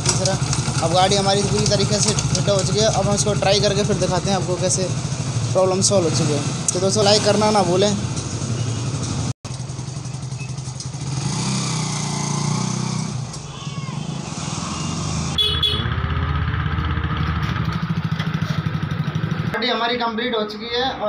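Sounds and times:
motorcycle engine running: 0.0s - 19.6s.

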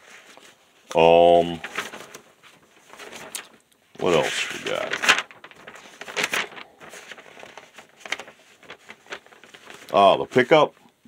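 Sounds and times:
paper rustling and crinkling: 0.0s - 10.8s.

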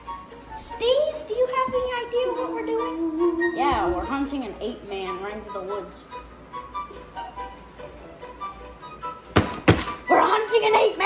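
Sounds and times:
faint background music: 0.0s - 11.0s
sharp thunks: 9.4s - 10.0s.

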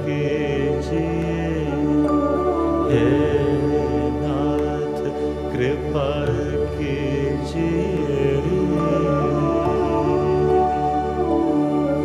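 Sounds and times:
person singing devotional song: 0.0s - 12.0s
steady drone: 0.0s - 12.0s.

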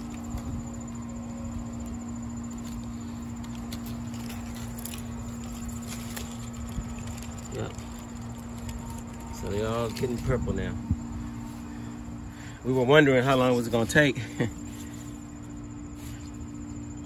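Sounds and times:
leaves brushing microphone: 0.0s - 17.0s
steady low two-tone hum: 0.0s - 17.0s.

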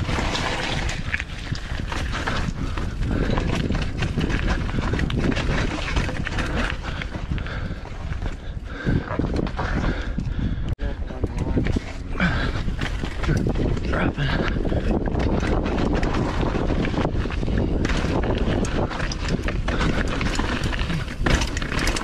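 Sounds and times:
mountain bike rattling over rock: 0.0s - 22.0s.

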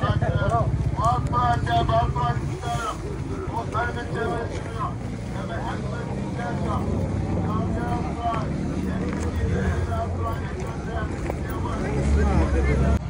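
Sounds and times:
steady low rumble: 0.0s - 12.6s
distant voices talking: 0.0s - 13.0s.

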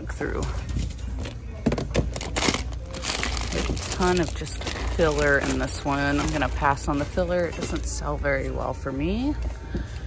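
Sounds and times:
plastic bags crinkling: 2.0s - 8.6s.

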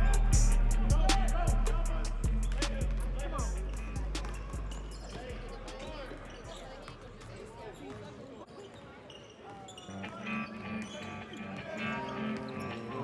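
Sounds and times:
rap track bass: 0.0s - 6.1s
players calling out: 0.0s - 13.0s
sneakers squeaking: 2.2s - 13.0s
basketball dribbling on wooden court: 2.3s - 5.5s.

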